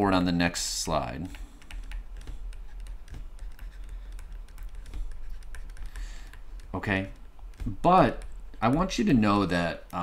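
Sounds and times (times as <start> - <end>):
low steady hum: 0.0 - 10.0
stylus tapping on tablet screen: 1.2 - 10.0.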